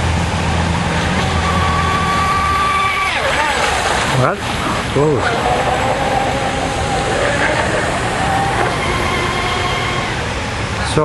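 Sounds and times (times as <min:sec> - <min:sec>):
loud rushing hiss: 0:00.0 - 0:11.0
model boat engine whine: 0:00.0 - 0:11.0.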